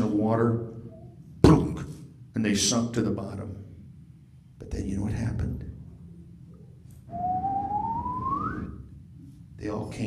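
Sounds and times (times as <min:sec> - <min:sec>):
man whistling rising note: 0:07.1 - 0:08.9.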